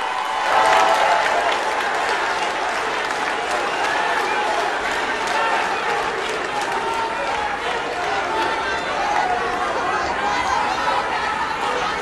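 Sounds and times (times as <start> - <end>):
large audience applauding: 0.0 - 12.0.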